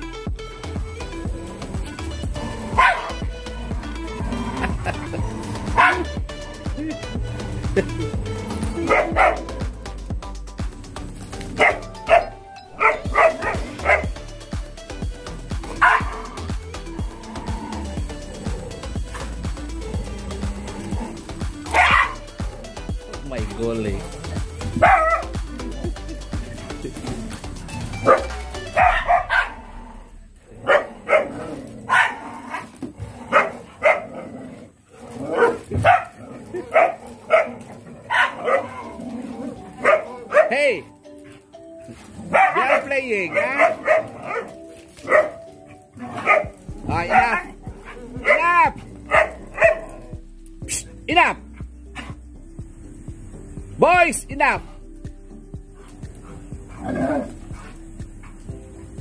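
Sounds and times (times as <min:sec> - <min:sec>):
background music: 0:00.0 - 0:59.0
dogs barking and yipping: 0:00.6 - 0:23.2, 0:24.0 - 0:52.3, 0:54.6 - 0:59.0.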